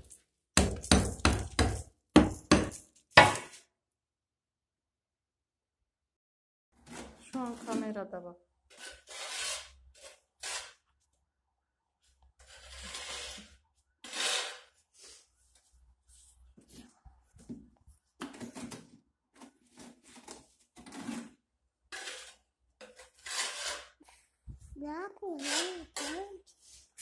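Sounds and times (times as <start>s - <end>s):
ceramic tiles knocking: 0.6s - 3.5s
mortar scraped in plastic bucket: 8.7s - 10.8s, 12.4s - 15.3s, 19.4s - 24.1s, 25.4s - 26.5s.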